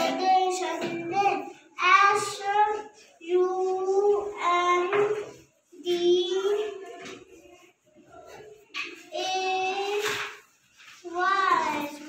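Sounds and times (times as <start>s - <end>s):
boy spelling in sing-song voice: 0.0s - 12.0s.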